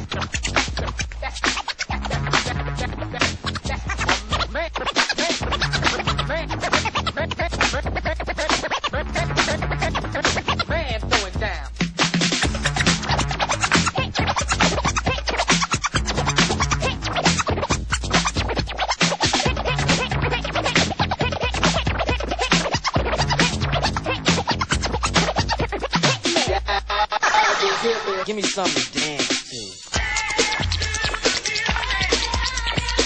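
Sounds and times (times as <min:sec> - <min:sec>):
dance music with heavy bass: 0:00.0 - 0:33.0
turntable scratching: 0:00.0 - 0:33.0.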